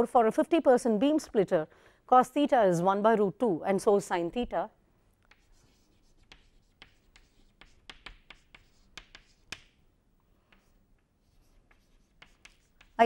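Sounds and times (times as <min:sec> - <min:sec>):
chalk tapping and scratching: 0:05.2 - 0:09.8, 0:10.4 - 0:13.0.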